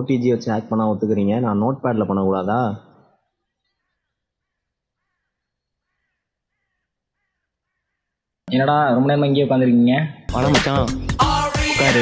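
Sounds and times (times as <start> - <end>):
faint bird calls: 2.8 - 8.4.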